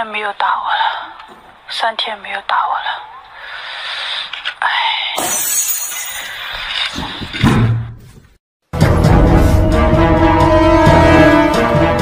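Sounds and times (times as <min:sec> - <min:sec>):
woman speaking: 0:00.0 - 0:01.1, 0:01.7 - 0:03.3
glass shattering on floor: 0:05.2 - 0:06.6.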